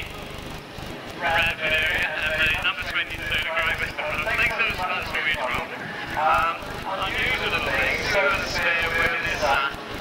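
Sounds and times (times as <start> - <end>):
pulsing engine beat: 0.0 - 10.0
indistinct voice: 1.2 - 10.0.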